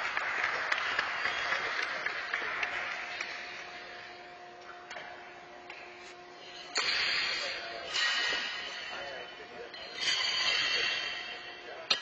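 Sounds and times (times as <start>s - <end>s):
scattered applause: 0.0s - 3.9s
faint steady hum: 0.0s - 12.0s.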